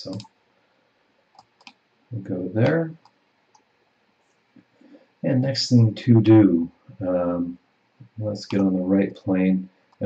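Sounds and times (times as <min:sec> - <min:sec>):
computer mouse clicks: 0:00.1 - 0:00.3, 0:01.3 - 0:01.8.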